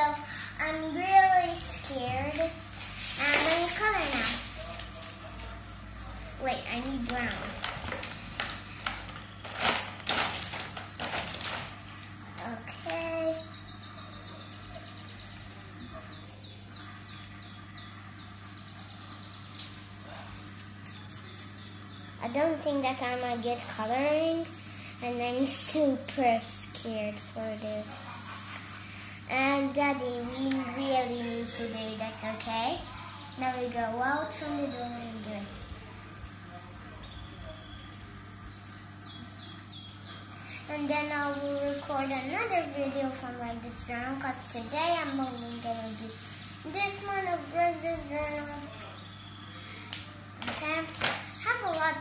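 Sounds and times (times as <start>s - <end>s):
steady low hum: 0.0s - 52.0s
marker scribbling on paper: 19.6s - 21.8s, 40.7s - 46.1s, 46.7s - 48.7s.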